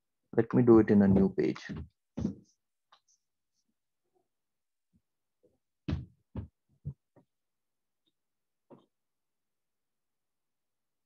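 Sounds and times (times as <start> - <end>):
stylus tapping tablet screen: 1.0 - 3.3.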